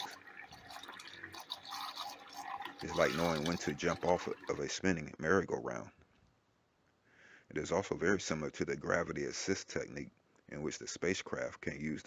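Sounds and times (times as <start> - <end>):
water churning and bubbling: 0.0 - 4.8.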